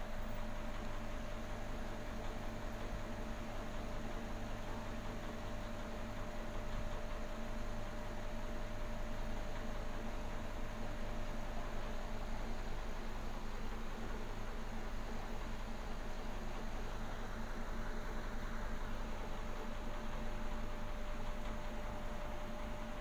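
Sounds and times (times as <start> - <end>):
aquarium equipment humming: 0.0 - 23.0.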